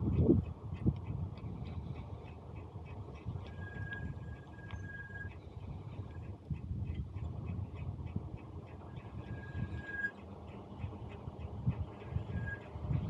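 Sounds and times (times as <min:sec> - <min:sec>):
faint irregular ticks: 0:00.0 - 0:13.0
wind rumbling on microphone: 0:00.0 - 0:13.0
thin high tone: 0:09.0 - 0:10.2.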